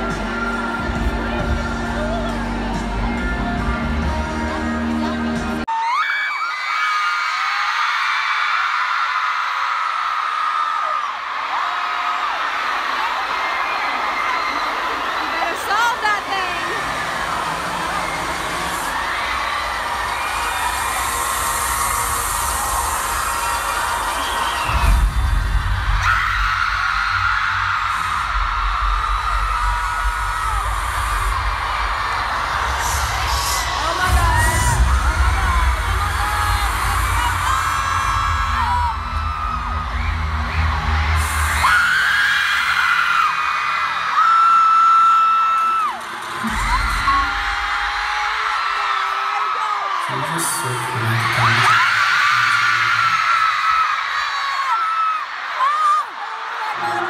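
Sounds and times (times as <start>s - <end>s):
concert intro music: 0.0s - 5.7s, 14.8s - 44.2s, 45.6s - 48.8s
crowd screaming: 0.0s - 57.0s
deep bass pulses: 21.9s - 41.8s.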